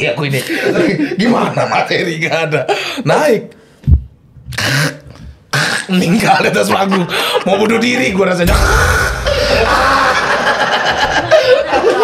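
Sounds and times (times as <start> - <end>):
breathy vocal burst: 8.5 - 10.5.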